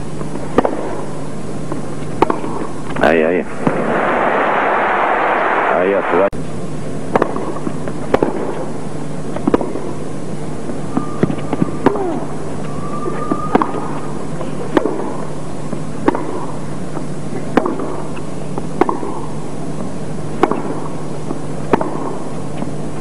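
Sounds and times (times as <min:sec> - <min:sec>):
racquets striking tennis ball: 0:00.2 - 0:03.0, 0:07.1 - 0:10.0, 0:10.6 - 0:22.8.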